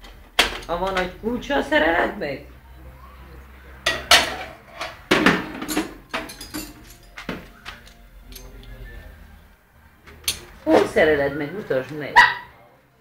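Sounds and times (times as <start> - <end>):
metal wrenches clanking: 0.0 - 1.2, 3.9 - 8.8, 10.0 - 11.3.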